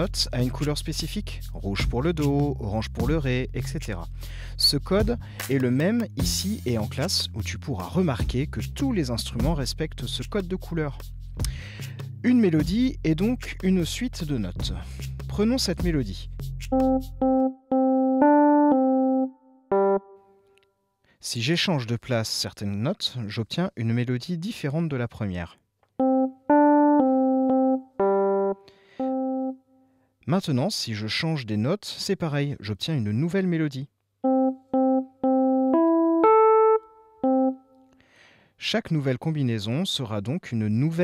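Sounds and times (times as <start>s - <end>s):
electric piano melody: 16.8s - 20.3s, 26.0s - 29.6s, 34.2s - 37.7s.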